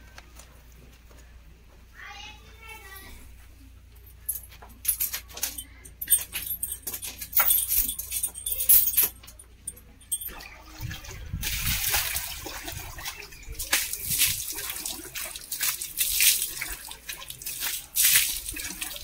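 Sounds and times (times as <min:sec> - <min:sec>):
chain clinking and rattling: 0:04.0 - 0:10.4
water sloshing in stone trough: 0:10.3 - 0:19.0.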